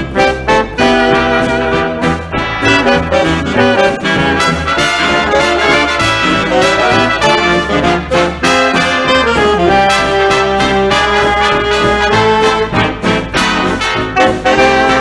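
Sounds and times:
big band jazz: 0.0s - 15.0s.

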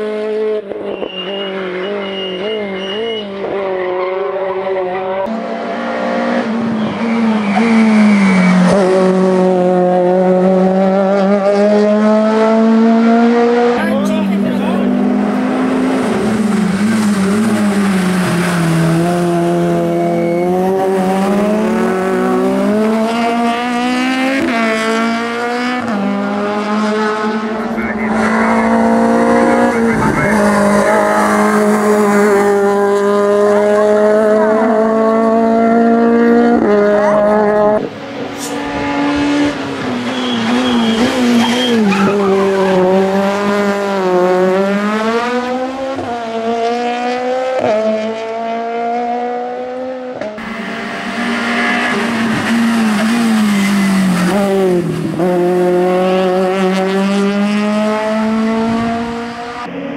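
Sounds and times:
race car engine revving: 0.0s - 59.9s.

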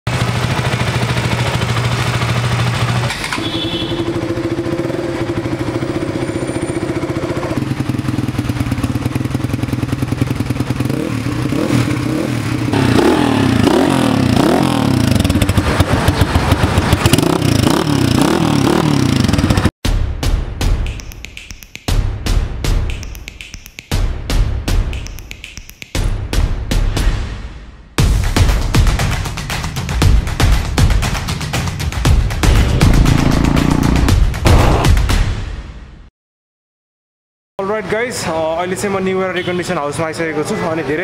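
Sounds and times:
motorcycle engine idling: 0.1s - 14.2s, 31.8s - 34.9s.

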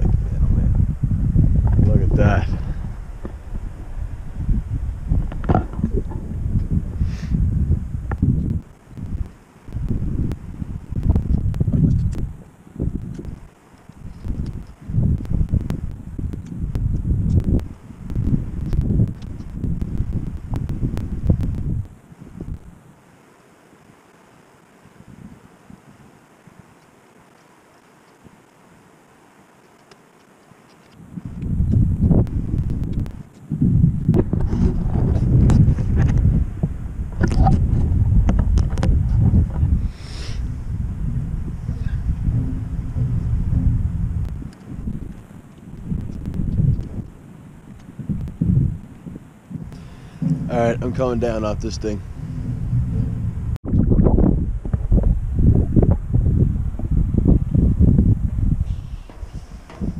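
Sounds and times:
wind buffeting microphone: 0.0s - 23.0s, 24.8s - 26.7s, 30.9s - 59.9s.

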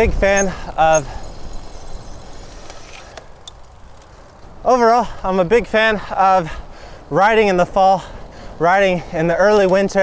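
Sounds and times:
wind rumble on microphone: 0.0s - 2.8s
bike tyres rolling on pavement: 0.0s - 10.0s.

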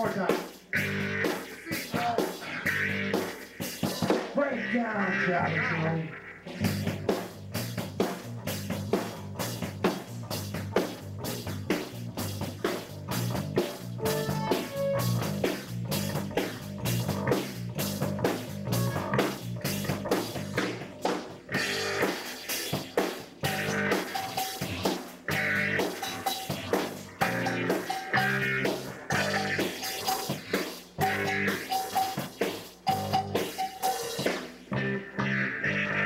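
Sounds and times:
drum kit steady beat: 0.0s - 4.6s, 6.5s - 35.4s
keyboard and guitar: 0.0s - 36.0s
repeating bass guitar line: 0.7s - 3.4s, 4.4s - 22.2s, 23.4s - 32.2s, 32.8s - 34.0s, 34.6s - 36.0s.

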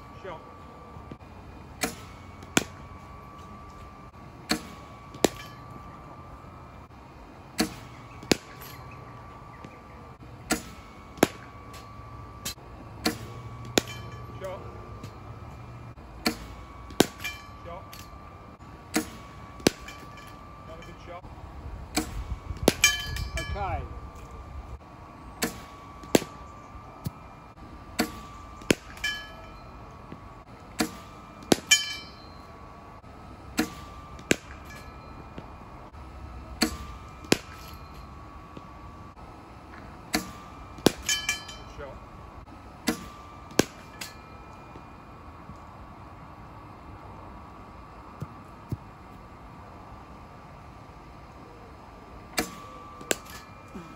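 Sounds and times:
bowling machine whine: 0.0s - 53.9s
cricket bat striking balls: 7.6s - 9.9s, 10.5s - 11.9s, 13.0s - 15.7s, 25.4s - 27.2s, 28.0s - 29.4s, 39.8s - 41.6s.

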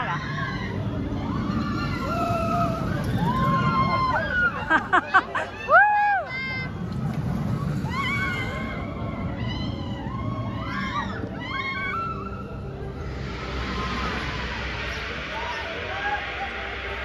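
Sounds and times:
low rumble of coaster train: 0.0s - 17.0s
roller coaster riders screaming: 0.0s - 17.0s.

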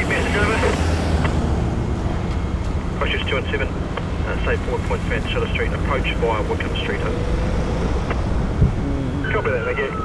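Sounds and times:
low rumble: 7.4s - 9.4s.

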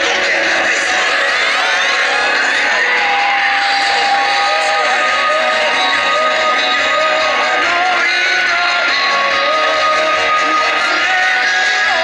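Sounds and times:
dance music: 0.0s - 12.0s
dancers shouting and whooping: 0.0s - 12.0s.

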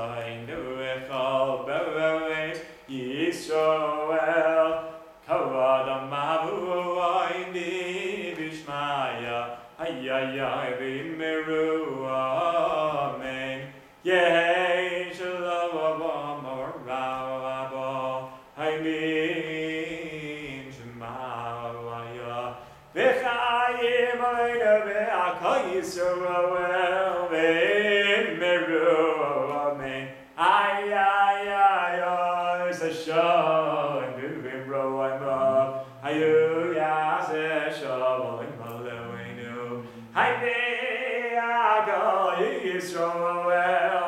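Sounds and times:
man singing unaccompanied: 0.0s - 44.0s.

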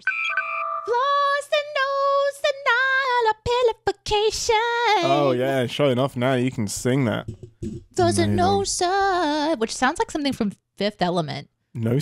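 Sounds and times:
high voice singing: 5.0s - 5.4s, 8.0s - 8.8s.

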